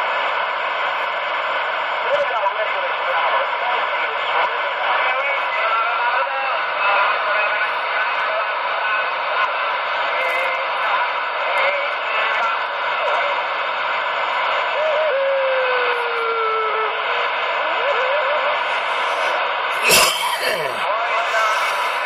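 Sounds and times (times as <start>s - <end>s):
radio static hiss: 16.8s - 22.0s.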